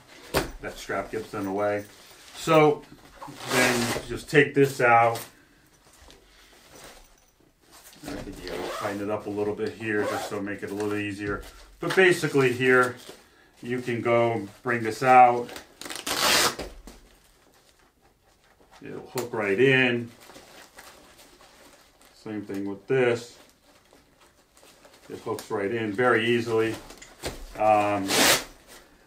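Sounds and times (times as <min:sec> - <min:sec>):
nylon bag rustling: 0:00.0 - 0:04.3, 0:13.7 - 0:17.8, 0:19.4 - 0:29.0
nylon bag rustling and ticks: 0:18.8 - 0:28.4.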